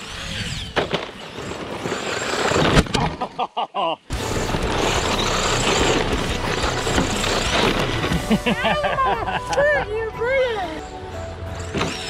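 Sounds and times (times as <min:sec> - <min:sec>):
people laughing: 0:03.0 - 0:04.1, 0:08.2 - 0:10.1.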